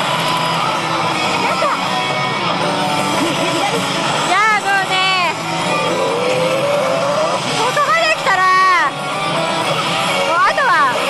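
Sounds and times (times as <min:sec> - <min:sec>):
game effect sounds: 0:05.0 - 0:08.9.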